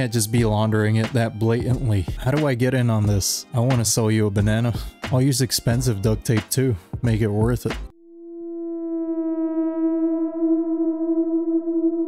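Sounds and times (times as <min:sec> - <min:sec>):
electronic drone: 0:08.0 - 0:12.0.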